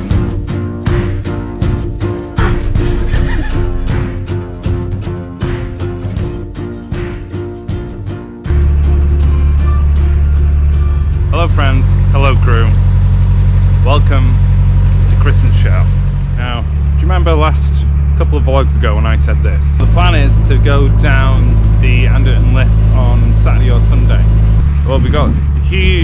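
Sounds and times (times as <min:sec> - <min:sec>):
boat engine droning: 0:00.0 - 0:26.0.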